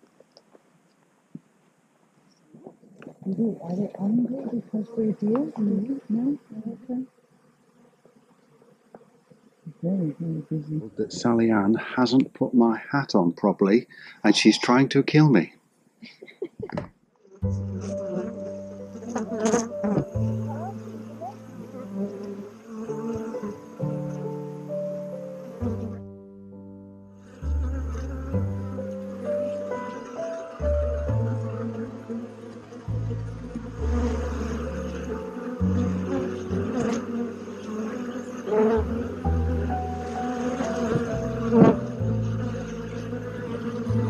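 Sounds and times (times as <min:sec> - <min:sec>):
honey bees buzzing: 0:03.2 - 0:12.2, 0:14.0 - 0:15.0, 0:17.2 - 0:26.3, 0:27.1 - 0:44.0
background music: 0:17.4 - 0:44.0.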